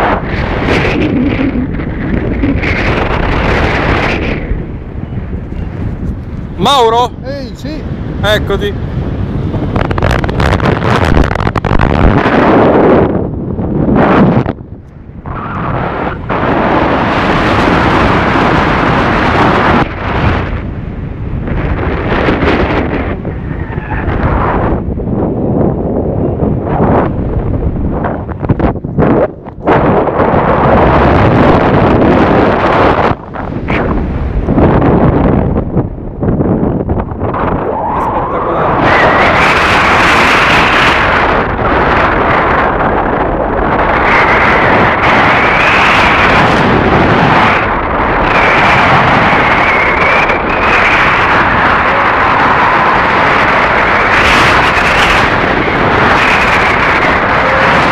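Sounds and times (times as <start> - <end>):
wind rushing over microphone: 0.0 - 57.9.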